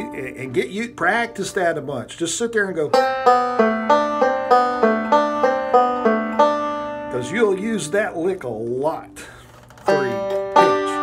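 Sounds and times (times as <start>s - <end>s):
banjo picked slowly: 0.0s - 1.4s, 2.8s - 8.4s, 9.8s - 11.0s
man talking: 0.0s - 3.0s, 7.1s - 11.0s.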